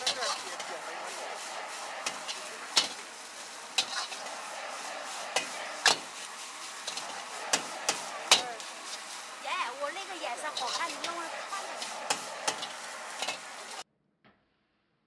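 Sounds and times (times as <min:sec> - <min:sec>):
ladle striking and scraping wok: 0:00.0 - 0:13.8
rice sizzling in wok: 0:00.0 - 0:13.9.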